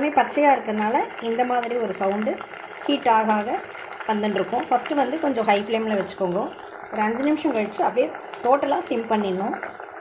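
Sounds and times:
woman speaking: 0:00.0 - 0:09.7
leaves crackling in hot oil: 0:00.0 - 0:10.0.

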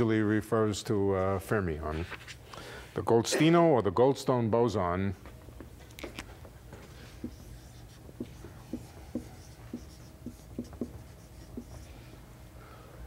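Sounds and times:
chalk writing on blackboard: 0:06.9 - 0:12.2.

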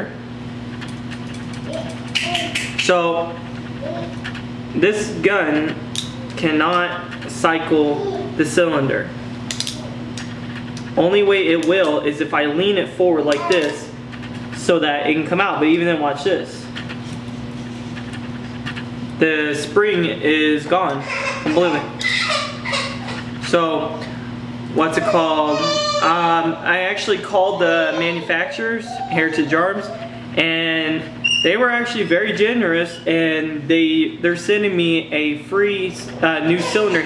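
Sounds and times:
steady low hum: 0:00.0 - 0:37.0.

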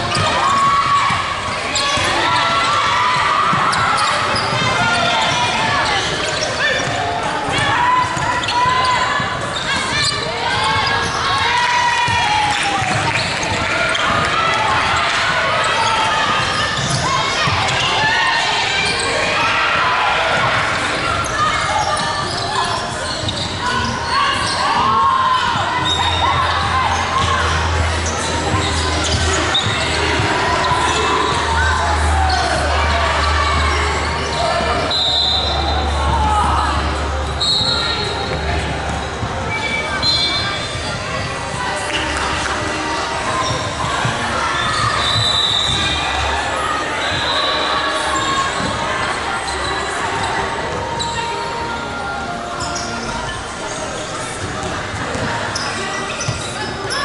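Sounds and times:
players calling out: 0:00.0 - 0:57.0
sneakers squeaking: 0:00.0 - 0:57.0.

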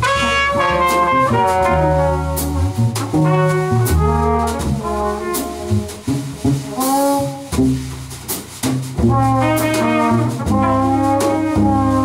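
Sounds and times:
trumpet and trombone harmony: 0:00.0 - 0:07.8, 0:09.0 - 0:12.0
double bass: 0:00.0 - 0:12.0.

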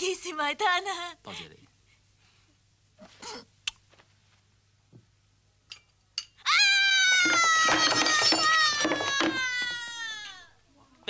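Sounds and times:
woman screaming: 0:06.4 - 0:10.6.

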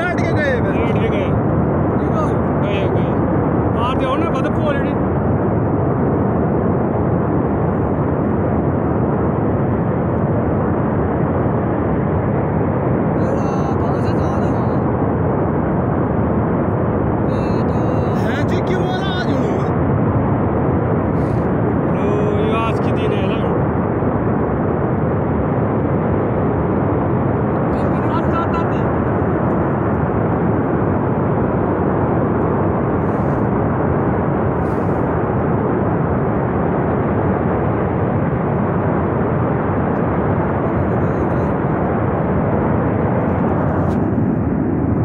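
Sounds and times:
voices: 0:13.2 - 0:14.8, 0:17.3 - 0:19.8, 0:21.9 - 0:23.5, 0:27.8 - 0:29.0
roar of flash flood: 0:14.4 - 0:45.0.

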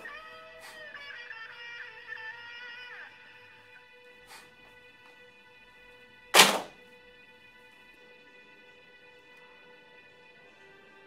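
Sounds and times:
picture frame thunk on shelf: 0:06.4 - 0:06.7.

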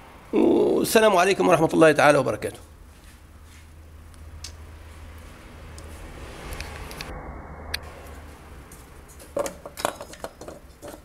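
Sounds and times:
metal part clinking: 0:09.2 - 0:11.0.

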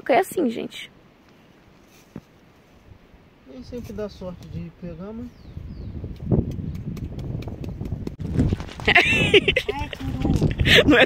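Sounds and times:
knife scraping into soil: 0:01.8 - 0:02.9.

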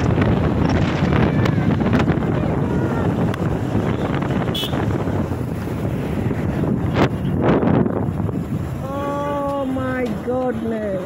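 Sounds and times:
motorcycle engine and road rumble: 0:00.0 - 0:11.0
wind buffeting microphone: 0:00.0 - 0:11.0.

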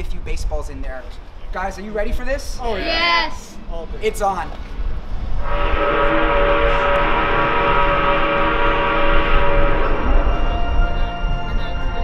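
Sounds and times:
loud multi-pitch whistle blast: 0:05.4 - 0:12.0.

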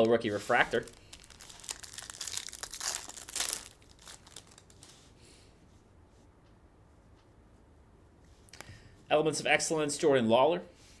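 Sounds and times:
wrapper crinkling and tearing: 0:00.4 - 0:05.1.

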